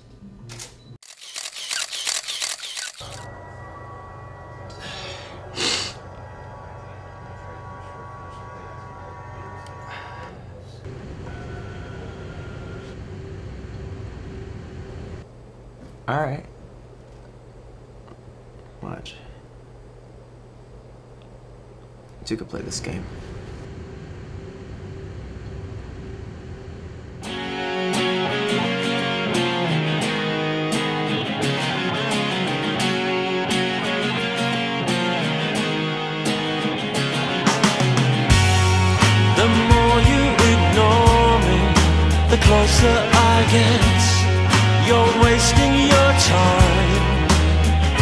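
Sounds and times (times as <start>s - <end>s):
camera shutter clicking: 0.5s - 3.3s
low hum: 1.4s - 22.2s, 22.8s - 27.4s
low rumbling background noise: 6.0s - 27.2s
faint steady tones: 10.6s - 15.6s.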